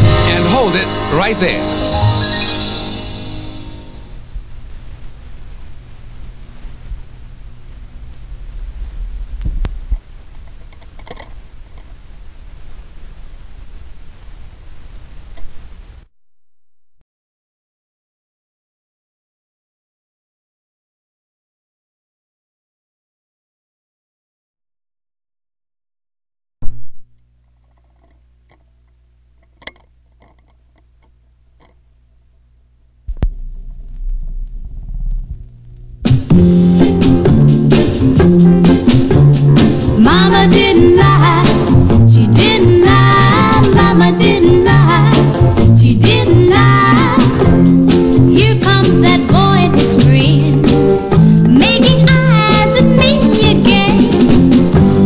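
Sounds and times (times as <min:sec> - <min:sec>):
stylus in run-out groove: 0:00.0 - 0:12.1, 0:33.1 - 0:55.0
record rumble and hum: 0:02.7 - 0:16.1, 0:26.6 - 0:55.0
stylus dropping onto record: 0:33.0 - 0:36.6.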